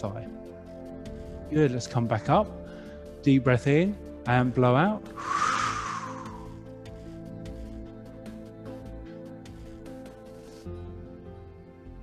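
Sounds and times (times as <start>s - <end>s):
soft background music: 0.0s - 12.0s
man exhaling: 5.2s - 6.6s.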